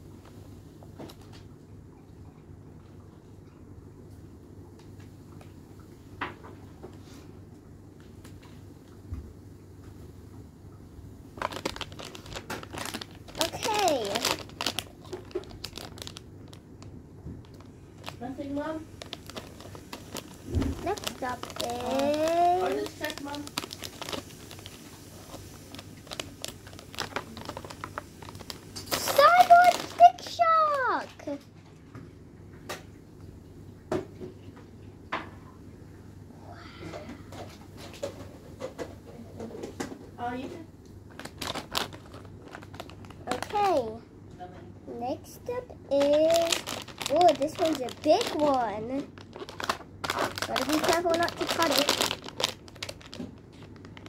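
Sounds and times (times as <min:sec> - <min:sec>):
foil packet crinkling: 0:11.3 - 0:31.4, 0:41.1 - 0:44.0, 0:45.4 - 0:54.0
child's voice: 0:13.4 - 0:14.4, 0:20.7 - 0:23.5, 0:28.9 - 0:31.5, 0:43.3 - 0:44.1, 0:44.9 - 0:49.1, 0:50.4 - 0:52.0.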